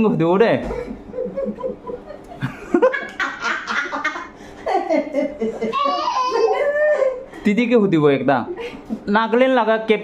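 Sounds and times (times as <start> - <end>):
people laughing: 0.7 - 7.3.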